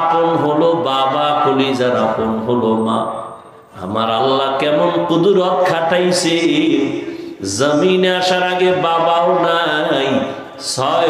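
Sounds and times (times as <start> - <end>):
man chanting a sermon: 0.0 - 11.0.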